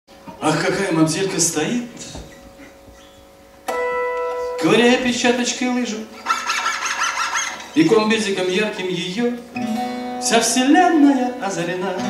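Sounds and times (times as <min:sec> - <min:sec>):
acoustic guitar note and chord: 0:03.7 - 0:05.5, 0:09.5 - 0:12.0.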